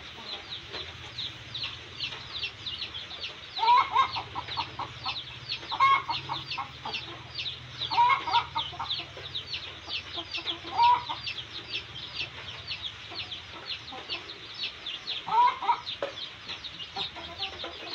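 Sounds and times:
chicks peeping: 0:00.0 - 0:17.9.

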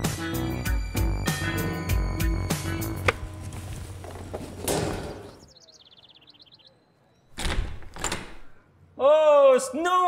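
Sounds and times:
door opening with thumps: 0:07.3 - 0:08.6.

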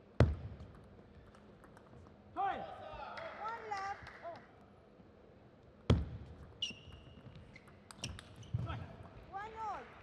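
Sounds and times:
shoe squeak on floor: 0:06.5 - 0:08.7.

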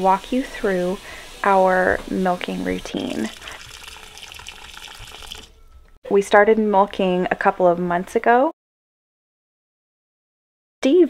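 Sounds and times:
faucet water running into pot: 0:00.0 - 0:05.6.

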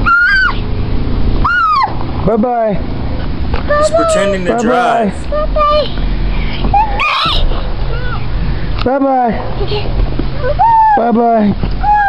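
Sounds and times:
toddler squealing: 0:00.0 - 0:00.6, 0:06.8 - 0:08.2.

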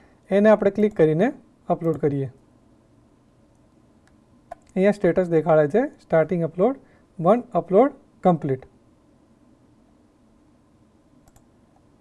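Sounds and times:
computer mouse double click: 0:11.2 - 0:11.5.

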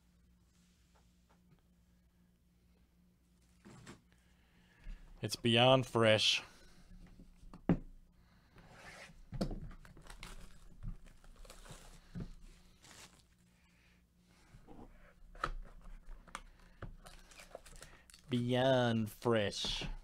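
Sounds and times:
plastic wrap tearing and crinkling: 0:09.9 - 0:12.1, 0:12.7 - 0:13.4, 0:17.0 - 0:18.3.

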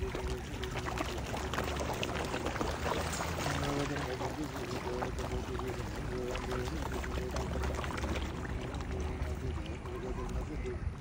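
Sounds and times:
fish splashing at water surface: 0:00.0 - 0:11.0.

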